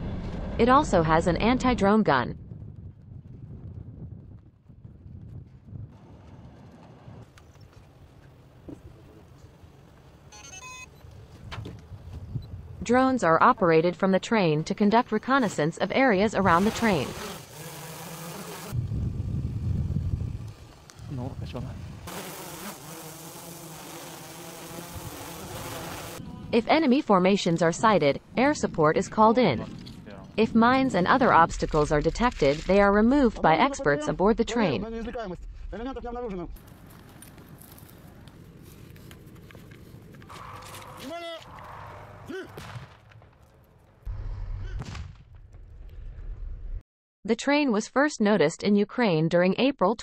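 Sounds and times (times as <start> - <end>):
explosion deep boom: 0.0 - 4.2, 34.6 - 36.6, 42.6 - 46.8
dense low rumble: 0.0 - 7.2, 18.8 - 22.1, 26.2 - 38.3.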